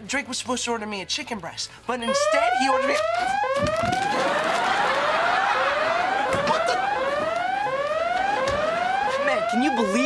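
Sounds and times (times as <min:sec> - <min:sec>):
electronic siren whoop: 0:02.1 - 0:10.0.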